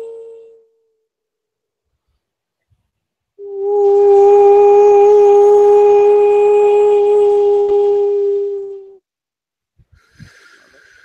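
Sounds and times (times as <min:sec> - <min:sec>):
woman holding a long note: 0:03.4 - 0:09.0.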